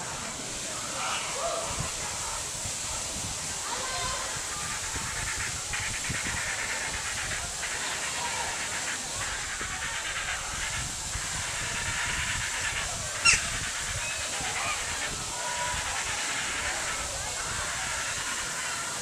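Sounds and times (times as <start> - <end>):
faint distant voices: 0.0 - 19.0
outdoor background hiss: 0.0 - 19.0
faint calls: 0.7 - 19.0.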